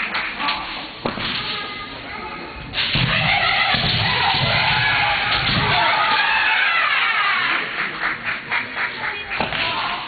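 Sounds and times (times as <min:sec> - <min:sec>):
people yelling long shouts: 0:03.1 - 0:07.5.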